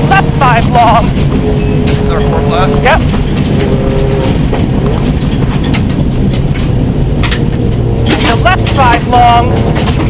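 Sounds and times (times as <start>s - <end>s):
car engine: 0.0s - 10.0s
tyres roaring on gravel: 0.0s - 10.0s.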